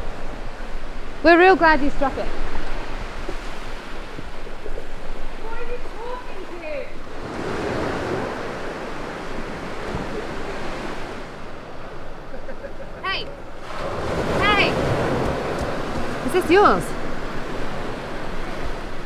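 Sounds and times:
surf washing onto sandy beach: 0.0s - 19.0s.

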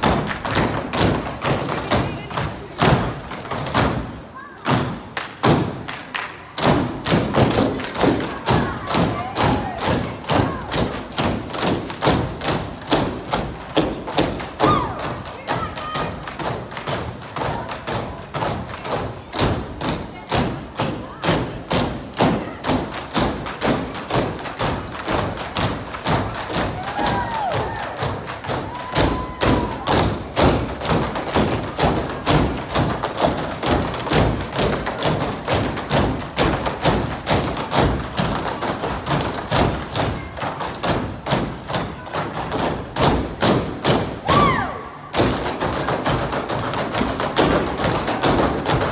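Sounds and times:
jump ropes slapping floor: 0.0s - 48.9s.

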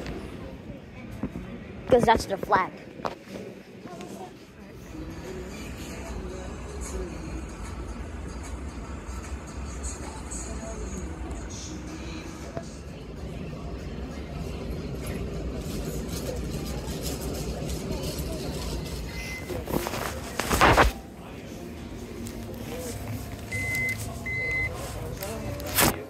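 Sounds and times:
faint music: 0.0s - 26.0s.

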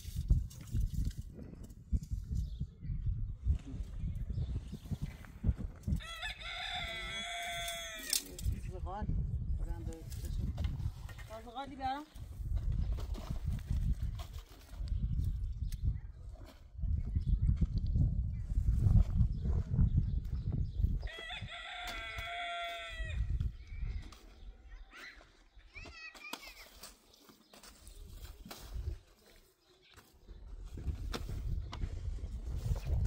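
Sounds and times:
low gusty rumble: 0.2s - 11.4s, 14.8s - 21.5s
rooster crowing: 6.0s - 8.1s, 21.1s - 23.2s.

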